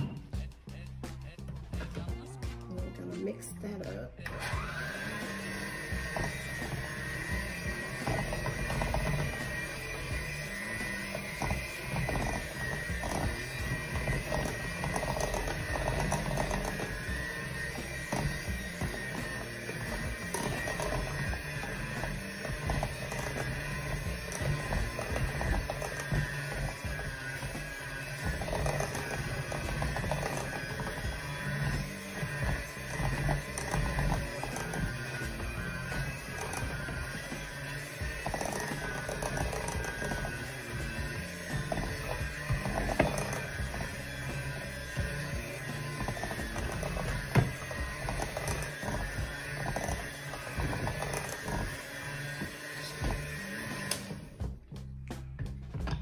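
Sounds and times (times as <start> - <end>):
electric hand mixer running: 0.0 - 0.4, 4.2 - 54.7
background music: 0.0 - 56.0.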